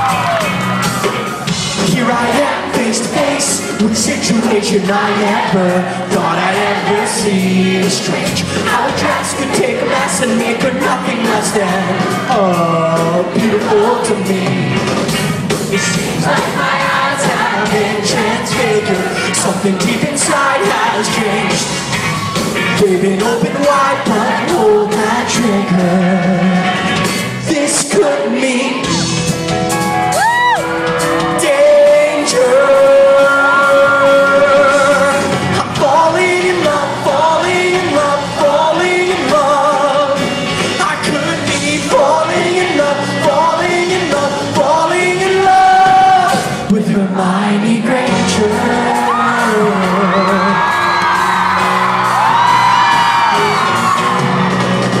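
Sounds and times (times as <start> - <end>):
fans screaming and whooping: 0.0 - 43.7, 48.2 - 55.0
live pop-rock band: 0.0 - 55.0
man singing: 1.6 - 15.1, 15.7 - 21.9, 22.6 - 29.3, 30.9 - 53.4.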